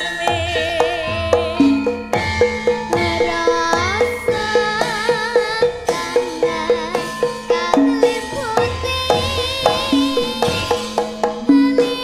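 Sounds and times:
child singing with vibrato: 0.0s - 12.0s
gamelan ensemble playing: 0.0s - 12.0s.

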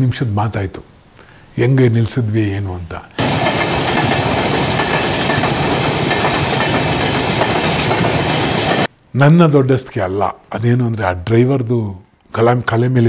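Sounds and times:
train rumbling on rails: 3.2s - 8.9s.

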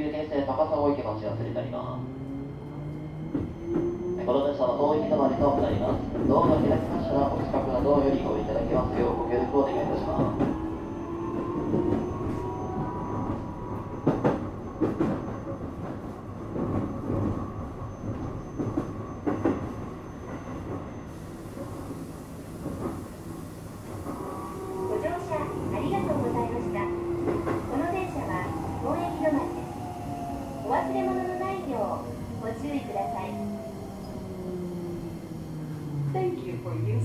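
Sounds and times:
wheel and track rumble: 0.1s - 37.0s
electric train motor whine: 0.9s - 15.2s, 21.0s - 37.0s.

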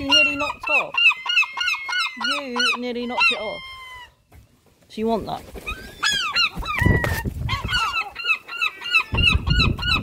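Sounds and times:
gulls calling: 5.5s - 10.0s.

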